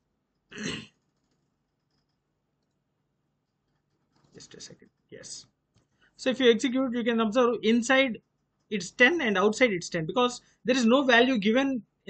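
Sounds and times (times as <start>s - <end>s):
faint keyboard clicks: 0.3s - 6.1s
man clearing throat: 0.6s - 1.0s.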